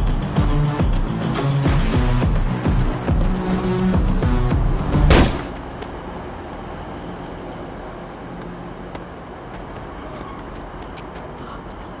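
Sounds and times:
electronic film score with heavy beat: 0.0s - 5.5s
loud bang: 5.0s - 5.6s.

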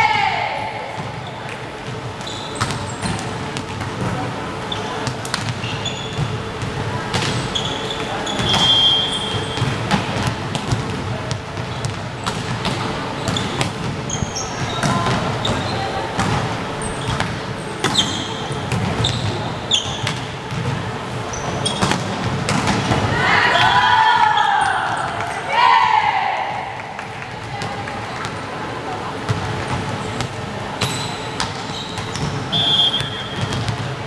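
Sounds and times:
loud shouting: 0.0s - 1.0s, 23.0s - 26.8s
sneakers squeaking on court: 1.0s - 23.0s, 29.2s - 34.0s
players calling out: 22.7s - 33.8s.

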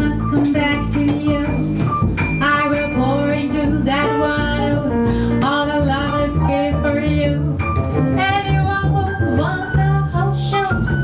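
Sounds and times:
woman singing: 0.0s - 7.6s, 8.2s - 11.0s
bass: 0.0s - 11.0s
piano: 0.0s - 11.0s.

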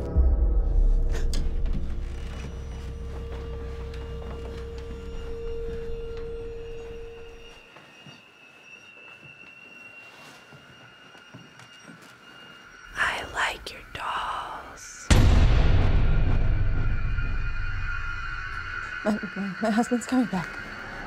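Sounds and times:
low rumble: 0.0s - 7.5s, 13.4s - 21.0s.

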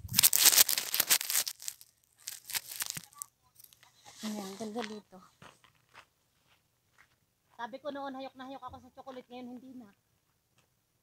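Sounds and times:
rustling handling noise on microphone: 0.0s - 5.1s
soft scrapes: 0.1s - 5.7s.

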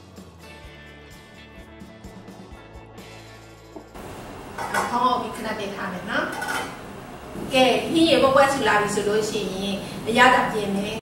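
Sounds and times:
woman talking: 4.6s - 6.6s, 7.4s - 11.0s
metal lid clinking on pot: 6.3s - 6.8s.

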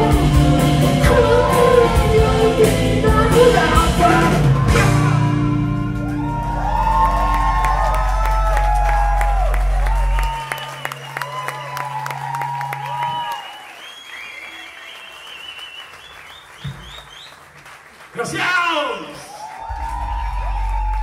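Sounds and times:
rock band sustained low notes: 0.0s - 12.0s, 19.6s - 21.0s
audience cheering: 4.8s - 21.0s
audience whistling: 6.0s - 17.7s, 19.3s - 21.0s
audience applause: 6.0s - 21.0s.

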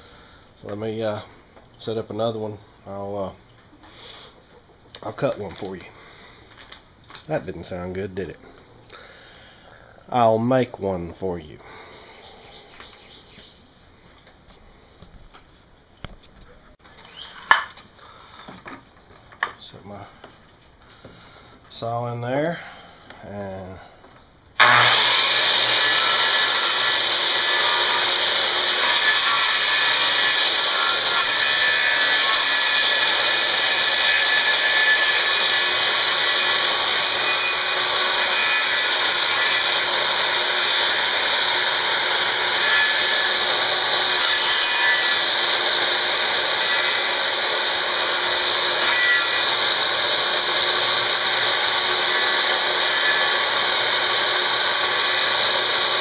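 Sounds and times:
circular saw cutting wood: 24.6s - 56.0s.

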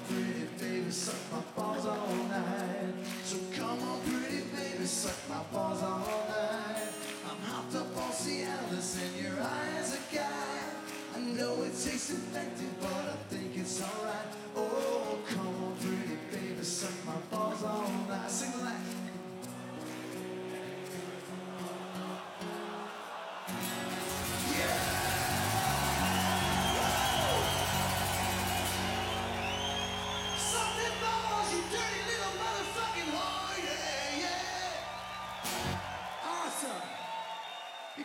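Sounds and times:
crowd cheering: 0.0s - 15.4s, 18.8s - 38.0s
acoustic guitar picked and strummed: 0.0s - 36.1s
whistles: 24.0s - 33.2s, 34.7s - 38.0s.

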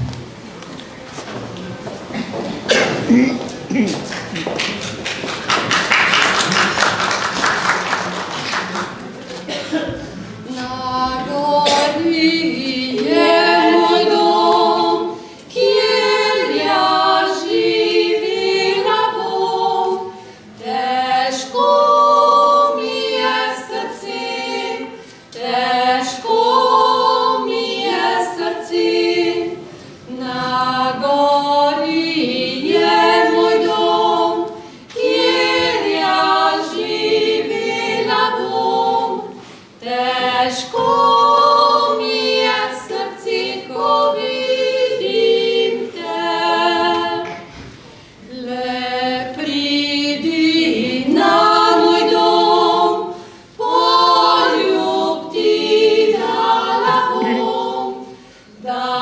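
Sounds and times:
women singing a cappella folk song: 9.5s - 59.0s.

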